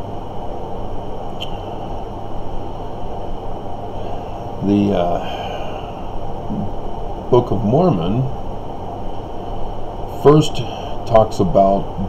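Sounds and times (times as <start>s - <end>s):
low rumble and hum: 0.0s - 12.0s.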